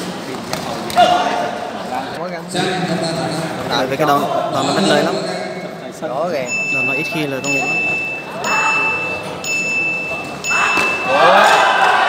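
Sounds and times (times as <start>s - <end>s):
loud voices shouting: 10.4s - 12.0s.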